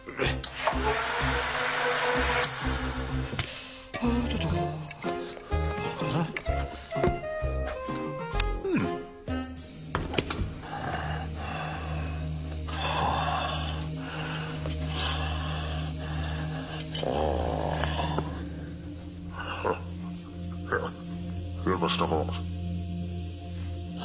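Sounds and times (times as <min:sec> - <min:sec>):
background music with low bass: 0:00.0 - 0:24.0.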